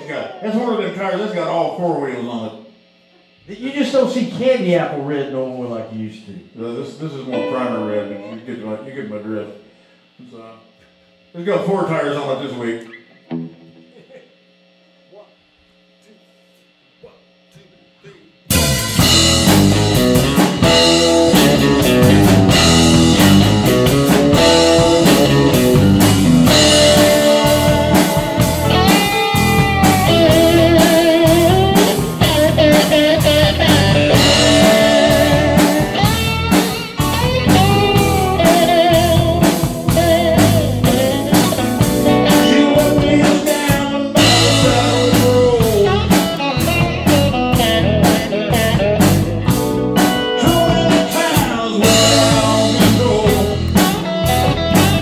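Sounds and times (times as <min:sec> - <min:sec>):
live blues band playing: 0:07.3 - 0:08.2, 0:18.5 - 0:55.0.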